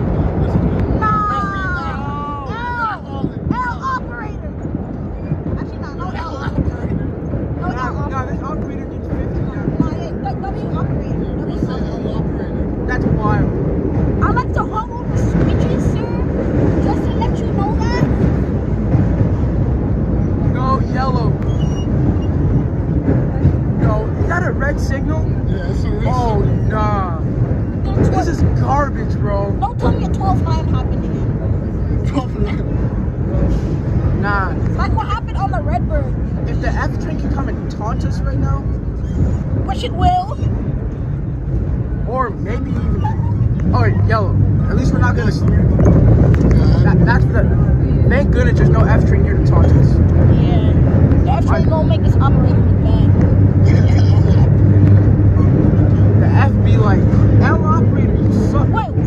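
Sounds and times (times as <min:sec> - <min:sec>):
passengers chattering and shouting: 0:00.0 - 0:59.0
subway train rumbling in tunnel: 0:00.0 - 0:59.0.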